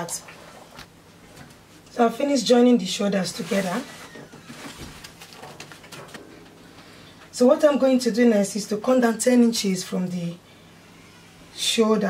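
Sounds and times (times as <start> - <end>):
soft brushing sounds: 3.1 - 5.4
fabric rustling: 3.2 - 6.2.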